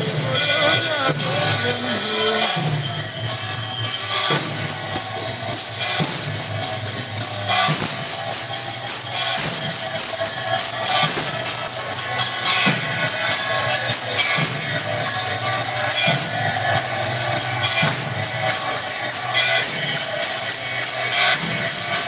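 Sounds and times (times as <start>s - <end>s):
drum strokes: 0.0s - 22.0s
hand cymbals ringing: 0.0s - 22.0s.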